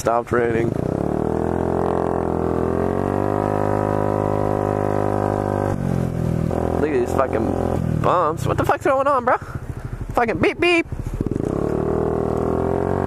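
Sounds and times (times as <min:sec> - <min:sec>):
scooter engine running: 0:00.4 - 0:13.0.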